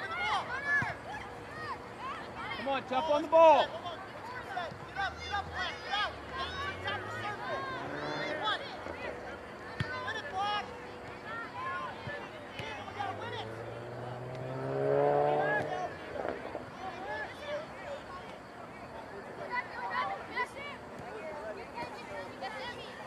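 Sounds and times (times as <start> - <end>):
distant shouts and calls: 0.0 - 23.0
vehicle engine passing: 5.0 - 10.7, 12.7 - 17.1.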